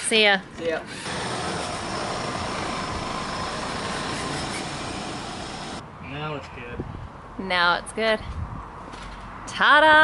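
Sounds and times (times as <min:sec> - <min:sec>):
car running with rushing sound: 0:01.0 - 0:05.8.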